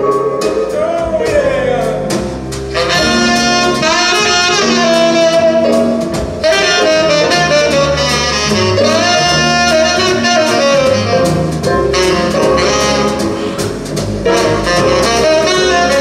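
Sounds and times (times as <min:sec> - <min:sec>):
drum kit: 0:00.0 - 0:16.0
jazz orchestra playing: 0:00.0 - 0:16.0
saxophone section: 0:02.7 - 0:16.0.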